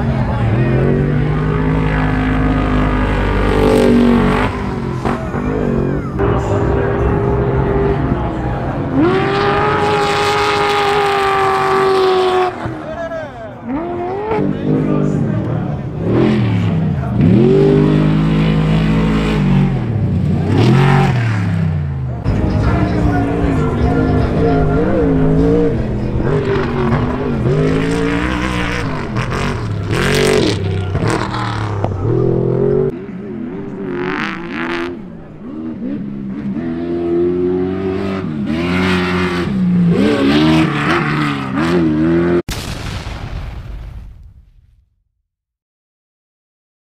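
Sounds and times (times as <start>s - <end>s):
race vehicle engine at full throttle: 0.0s - 42.5s.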